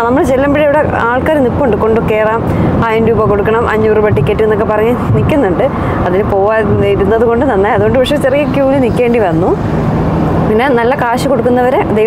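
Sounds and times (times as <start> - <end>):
woman talking: 0.0 - 9.6, 10.5 - 12.0
car cabin rumble: 0.0 - 12.0.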